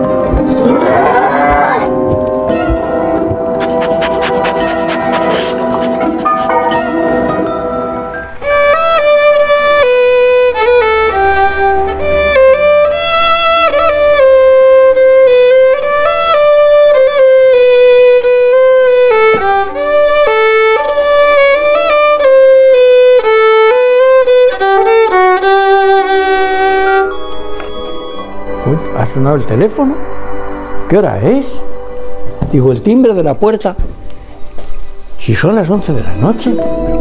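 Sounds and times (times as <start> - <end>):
solo violin slow melody: 8.4 - 28.3.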